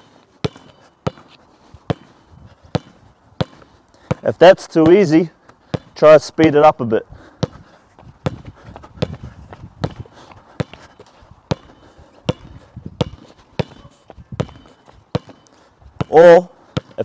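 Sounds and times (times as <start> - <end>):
basketball bouncing on hard court: 0.4 - 1.3, 1.9 - 2.1, 2.7 - 5.1, 5.7 - 5.9, 7.4 - 7.6, 8.2 - 10.9, 11.5 - 15.4, 16.0 - 17.0.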